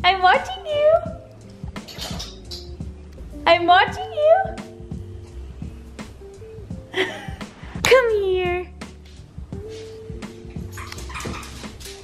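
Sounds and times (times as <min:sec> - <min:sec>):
soft background music: 0:00.0 - 0:12.0
dog whining: 0:10.6 - 0:11.7.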